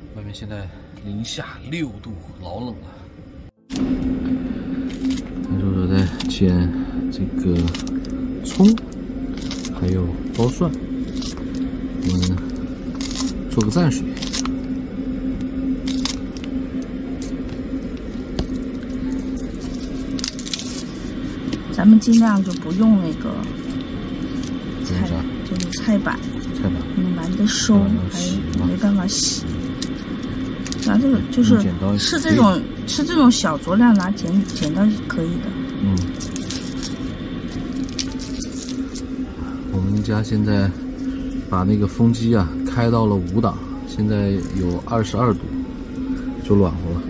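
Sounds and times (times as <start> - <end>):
steady low hum: 0.0 - 47.0
garlic skins crackling: 7.4 - 14.6, 15.8 - 16.6, 18.0 - 27.6, 28.3 - 32.6, 33.6 - 35.1, 35.8 - 40.4.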